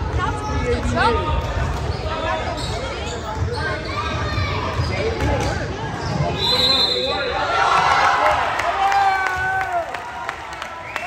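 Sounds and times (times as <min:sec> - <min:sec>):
spectators' voices in large hall: 0:00.0 - 0:11.0.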